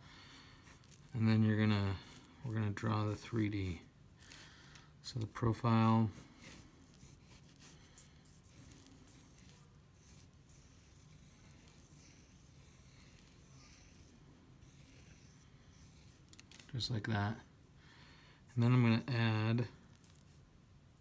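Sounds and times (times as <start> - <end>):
pencil scratching on paper: 0.3 - 4.4, 5.3 - 16.7.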